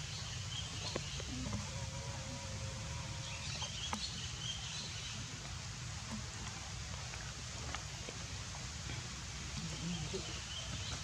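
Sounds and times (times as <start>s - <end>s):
steady hum: 0.0s - 7.5s.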